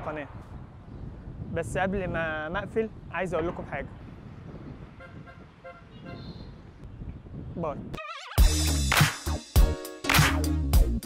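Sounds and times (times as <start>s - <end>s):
street traffic rumble: 0.0s - 7.6s
car horn short toots: 5.0s - 6.5s.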